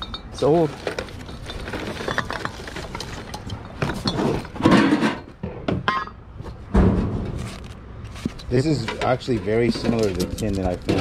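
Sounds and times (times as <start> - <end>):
heavy thump: 6.7 - 7.4
cardboard rustling: 7.3 - 8.9.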